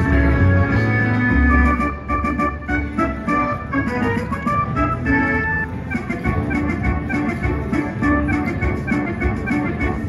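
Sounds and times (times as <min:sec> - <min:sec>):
electronic organ-like tune: 0:00.0 - 0:10.0.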